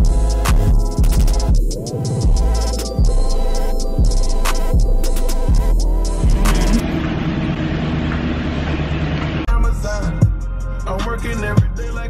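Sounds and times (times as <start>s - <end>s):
low engine hum: 4.8s - 10.2s.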